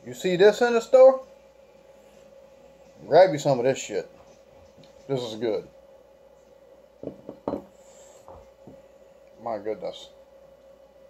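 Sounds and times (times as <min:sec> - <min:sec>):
glass bottle knocking on table: 0:07.0 - 0:07.7.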